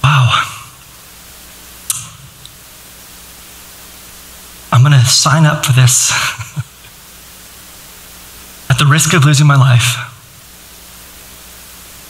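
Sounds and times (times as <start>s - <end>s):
faint low hum: 0.0s - 12.0s
steady hiss: 0.0s - 12.0s.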